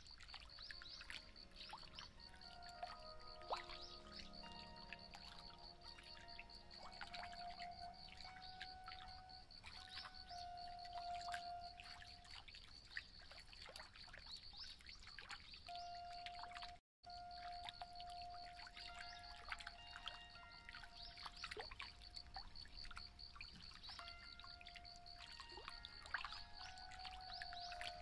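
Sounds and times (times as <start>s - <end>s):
electric zither plucked notes: 1.4s - 11.7s.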